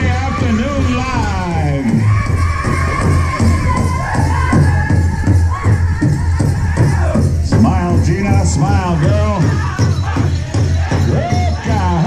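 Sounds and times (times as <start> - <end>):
steady hand drum beat: 0.0 - 12.0
chorus of voices singing: 2.1 - 12.0.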